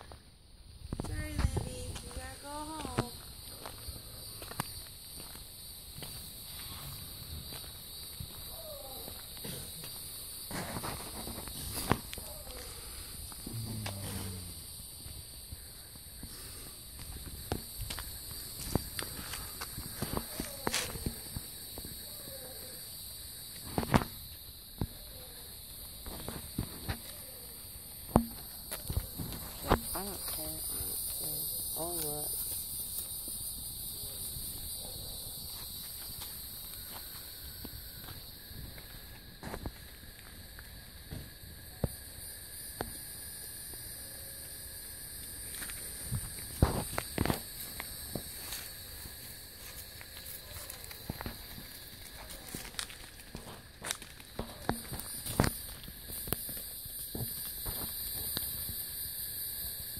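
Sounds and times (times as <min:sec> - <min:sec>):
high-pitched insect drone: 0:00.9 - 0:59.9
footsteps on gravel: 0:45.5 - 0:56.7.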